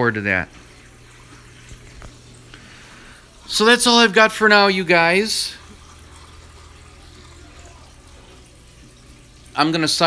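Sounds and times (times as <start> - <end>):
circulating water: 0.0 - 10.0
low pump hum: 0.0 - 10.0.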